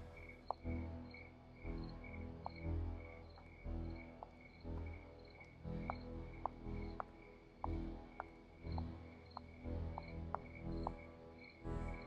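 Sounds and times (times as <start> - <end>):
low pulsing music: 0.0 - 12.0.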